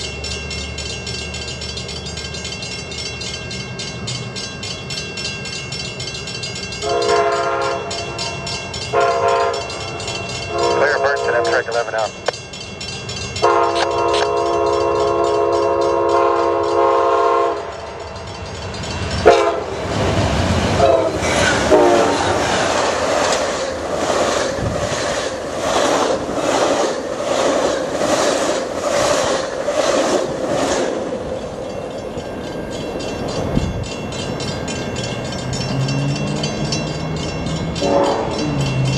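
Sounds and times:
train rumble: 0:00.0 - 0:38.9
train air horn chord: 0:06.8 - 0:09.8, 0:10.5 - 0:11.7, 0:13.4 - 0:17.7, 0:19.2 - 0:19.7, 0:20.8 - 0:22.2, 0:37.8 - 0:38.4
wheels clacking over rail joints: 0:17.6 - 0:38.9.

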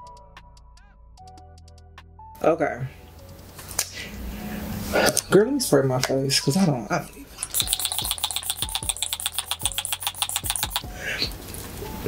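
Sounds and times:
spray bottle pumps: 0:07.4 - 0:10.9.

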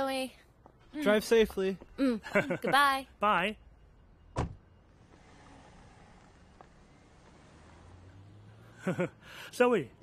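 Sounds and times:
car door shutting: 0:04.4 - 0:05.6
car pulling away rumble: 0:04.9 - 0:10.0.

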